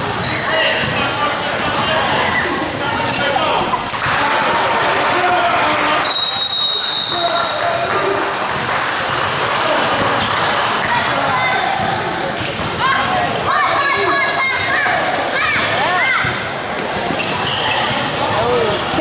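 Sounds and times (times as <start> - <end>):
echoing chatter of many voices: 0.0 - 19.0.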